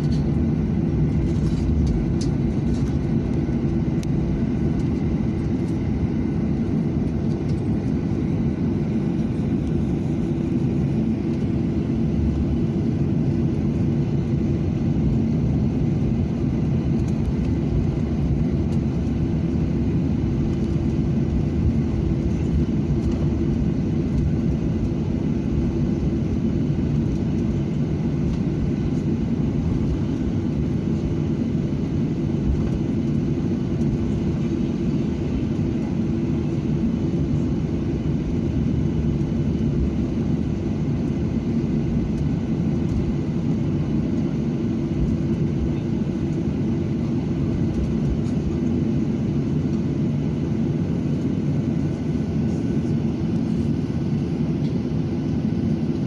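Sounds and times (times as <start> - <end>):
jet engines rumbling in cabin: 0.0 - 56.0.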